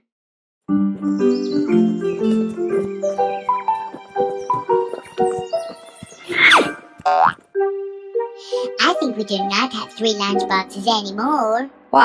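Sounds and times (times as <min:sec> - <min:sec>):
soft background music: 0:00.7 - 0:12.0
cartoon pitch-bend sound effect: 0:06.3 - 0:07.4
cartoon character speaking: 0:08.8 - 0:12.0.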